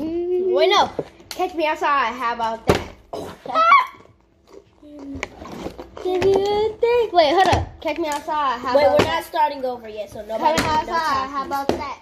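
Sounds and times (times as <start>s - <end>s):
child making vocal sounds: 6.0s - 7.4s.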